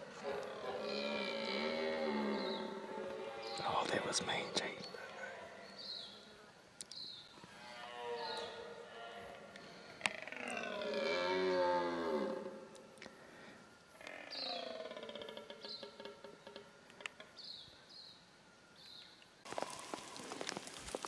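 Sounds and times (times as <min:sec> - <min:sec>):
deer stag roaring: 0:00.0 - 0:03.7, 0:10.0 - 0:12.6.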